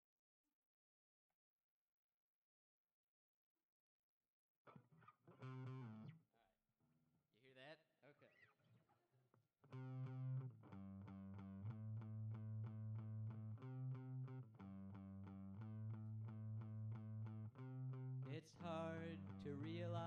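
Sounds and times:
distorted electric guitar strumming: 5.3s - 6.1s, 9.7s - 20.0s.

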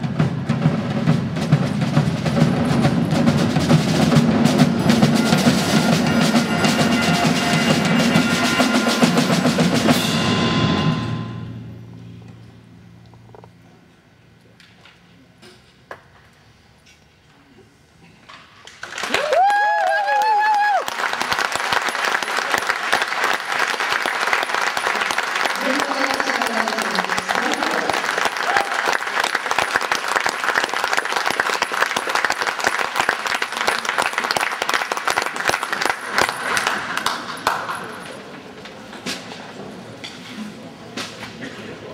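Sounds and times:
audience applause: 18.8s - 38.1s
loud high cheer: 18.9s - 37.6s
low shout: 19.1s - 20.9s, 28.4s - 29.0s.

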